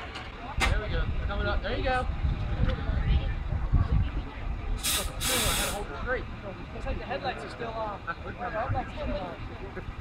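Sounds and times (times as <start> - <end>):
people talking in background: 0.0 - 10.0
wind rumbling on microphone: 0.5 - 5.4
short bursts of hiss: 4.8 - 5.8.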